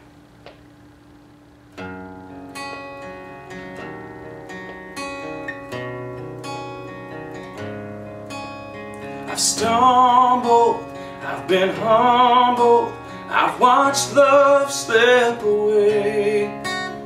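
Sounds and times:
acoustic guitar picked chords: 0:00.0 - 0:17.0.

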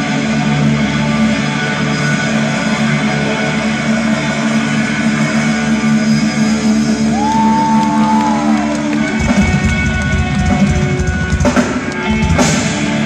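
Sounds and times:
bass guitar: 0:00.0 - 0:13.0
drums: 0:00.0 - 0:13.0.

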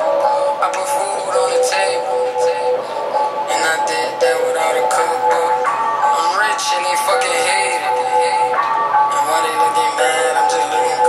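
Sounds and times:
rapping over a synth beat: 0:00.0 - 0:11.0.

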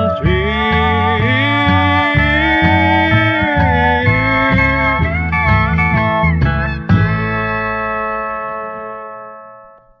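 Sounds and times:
steel guitar chord ringing: 0:00.2 - 0:10.0.

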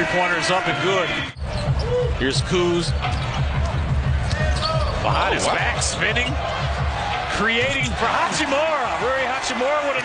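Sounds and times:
sneaker squeak: 0:01.4 - 0:02.0
arena music with bass beat: 0:01.4 - 0:08.1.

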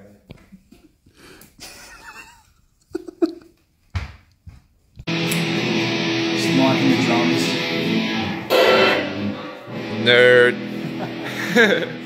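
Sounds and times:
electric guitar chords ringing: 0:05.1 - 0:12.0.

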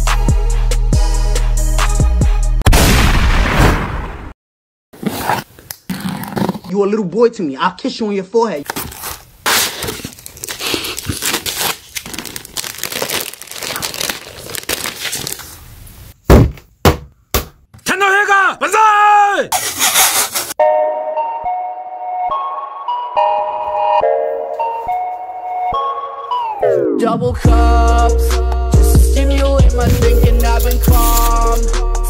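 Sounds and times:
packaging crinkling: 0:08.6 - 0:15.6, 0:29.9 - 0:31.6.

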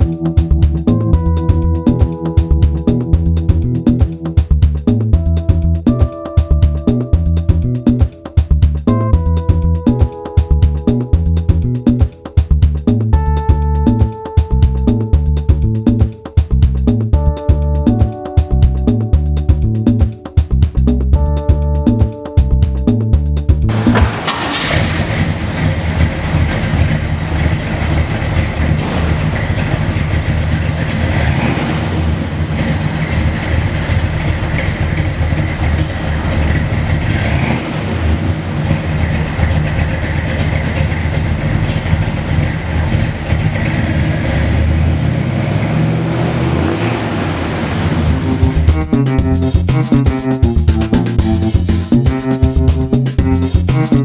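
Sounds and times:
music: 0:00.0 - 0:24.7, 0:48.0 - 0:54.0
car engine starting and running: 0:00.0 - 0:54.0.

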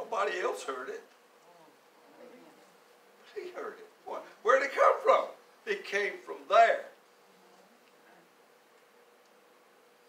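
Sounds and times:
faint distant voice: 0:01.4 - 0:02.8, 0:07.2 - 0:08.4.

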